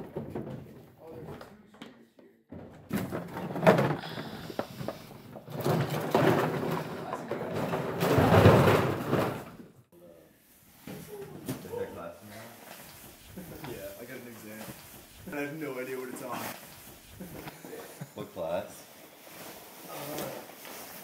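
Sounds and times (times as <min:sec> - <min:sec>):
decoy bags rustling and clattering: 0:02.5 - 0:09.6, 0:10.8 - 0:21.0.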